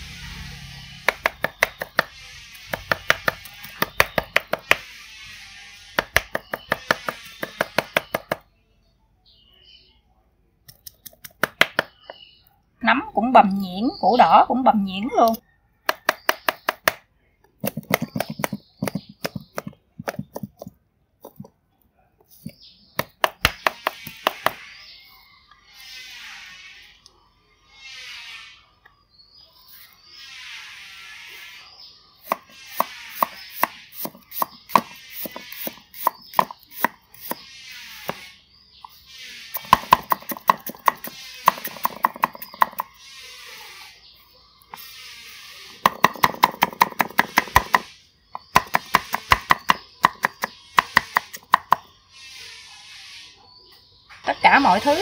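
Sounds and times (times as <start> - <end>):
cleaver chopping on block: 1.0 - 4.8, 6.0 - 8.4, 32.3 - 37.4, 39.6 - 42.9, 45.8 - 51.8.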